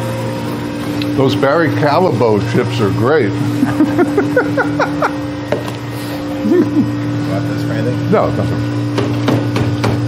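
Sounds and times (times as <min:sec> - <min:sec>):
batch freezer humming: 0:00.0 - 0:10.0.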